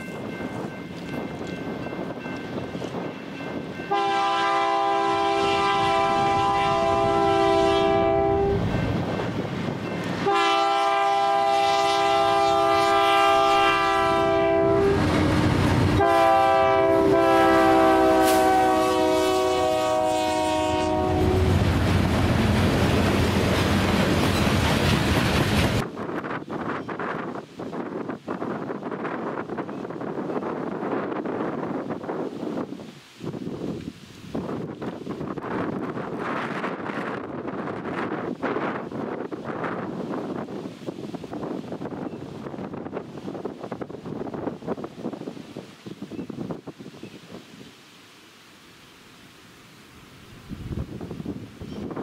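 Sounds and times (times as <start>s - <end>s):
train rumbling past: 0.0s - 32.7s
train air horn blasts: 3.9s - 8.7s, 10.2s - 21.6s.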